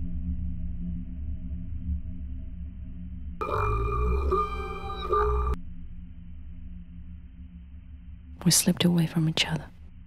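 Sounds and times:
low steady rumbling drone: 0:00.0 - 0:10.0
several held tones: 0:03.4 - 0:05.6.

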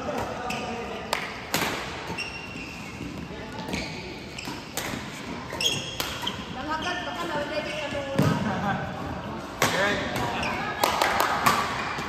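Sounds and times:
shoes squeaking on court floor: 0:00.1 - 0:01.0, 0:01.8 - 0:08.5.

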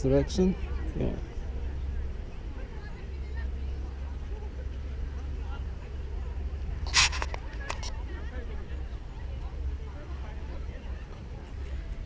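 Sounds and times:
distant people talking: 0:00.0 - 0:12.0
steady low rumble: 0:00.0 - 0:12.0.

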